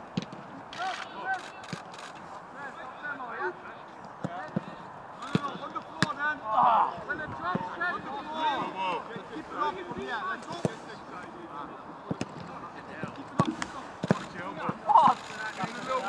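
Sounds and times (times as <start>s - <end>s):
players calling out: 0.7s - 16.0s
footballs kicked with thuds: 12.1s - 12.6s.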